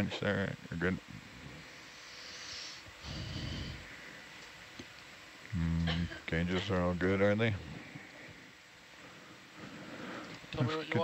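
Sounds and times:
person breathing into microphone: 1.9s - 4.3s.

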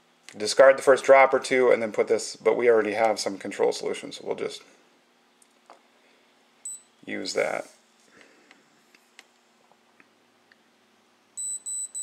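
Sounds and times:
short high-pitched beeps: 11.4s - 12.0s.

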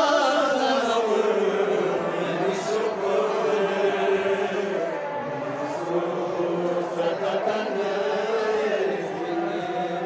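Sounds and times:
men chanting a mourning lament: 0.0s - 10.0s.

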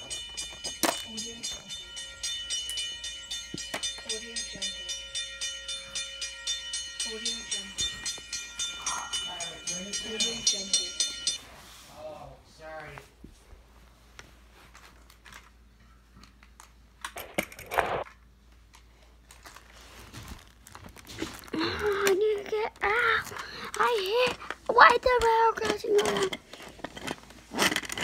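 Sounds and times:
railroad crossing bell ringing: 0.0s - 11.4s
child chanting: 8.8s - 10.9s
child talking: 21.6s - 26.4s.

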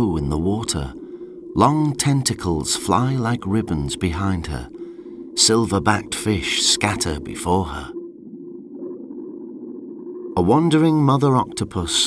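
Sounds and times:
soft background music: 0.0s - 9.0s.

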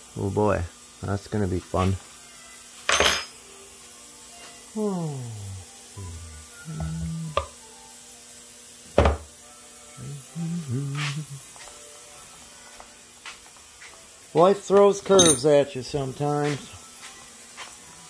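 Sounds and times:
faint steady hum: 0.0s - 13.2s
metal tools clanking on workbench: 2.9s - 3.3s, 14.7s - 15.7s
person humming and muttering: 4.6s - 7.6s, 9.9s - 11.6s.

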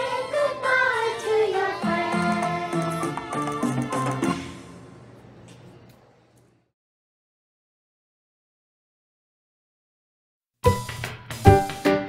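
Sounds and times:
children singing: 0.0s - 4.4s
backing music with bass: 10.7s - 12.0s.

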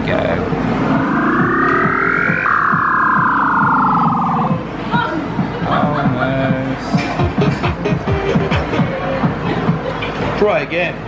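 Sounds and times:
claw machine electronic tone: 0.1s - 4.8s.

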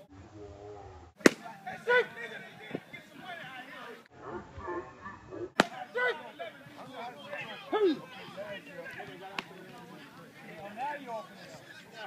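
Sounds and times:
faint voices: 0.0s - 12.0s
baseball snapping into mitt: 1.2s - 1.5s, 5.6s - 5.8s.

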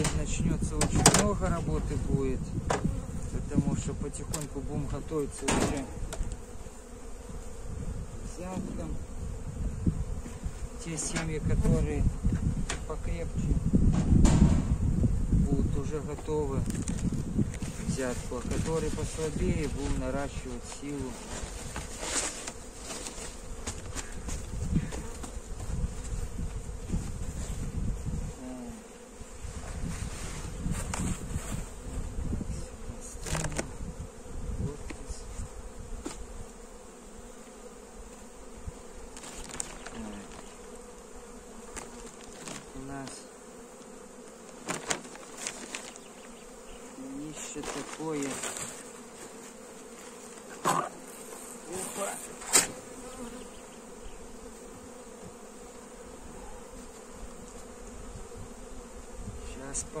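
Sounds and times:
honeybees buzzing: 0.0s - 60.0s
knocks and clicks of hive parts: 0.8s - 1.3s, 5.4s - 6.4s, 13.9s - 14.7s.

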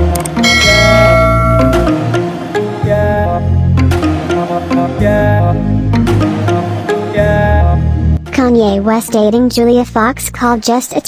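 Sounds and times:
intro music: 0.2s - 8.1s
bright bell-like chime: 0.4s - 2.2s.

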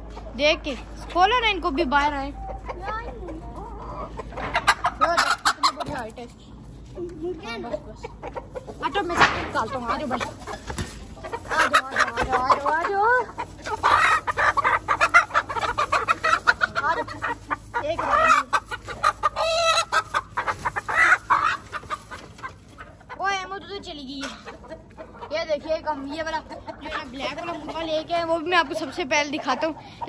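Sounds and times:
chickens clucking: 0.0s - 30.0s
wire-mesh coops rattling: 0.0s - 30.0s.

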